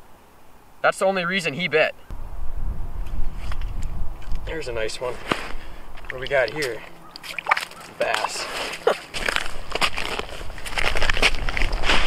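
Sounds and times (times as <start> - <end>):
wind buffeting microphone: 2.1 - 7.0, 9.2 - 12.0.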